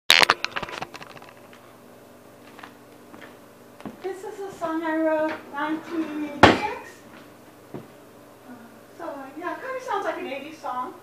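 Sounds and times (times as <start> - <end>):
faint steady hum: 0.1 - 11.0.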